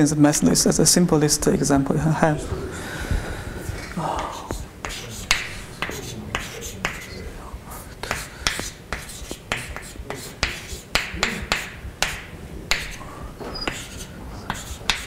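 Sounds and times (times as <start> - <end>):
chalk tapping and scraping: 4.2 - 7.2, 8.0 - 15.0.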